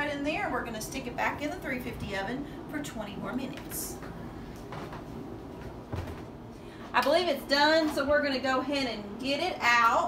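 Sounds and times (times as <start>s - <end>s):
kitchen room noise: 0.0s - 10.0s.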